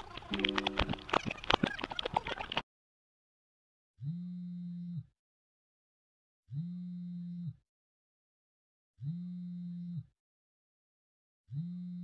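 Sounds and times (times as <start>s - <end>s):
low buzz pulses sliding in pitch: 6.5s - 7.6s, 9.0s - 10.1s.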